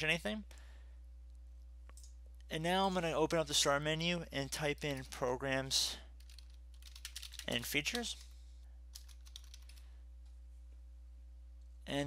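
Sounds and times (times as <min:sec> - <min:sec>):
faint steady hum: 0:00.0 - 0:12.0
keyboard keystrokes: 0:06.3 - 0:08.3, 0:09.0 - 0:09.8.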